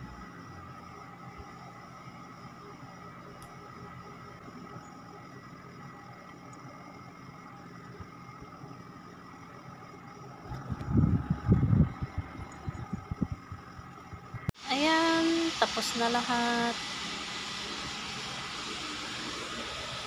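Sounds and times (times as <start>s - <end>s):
low background hum: 0.0s - 19.9s.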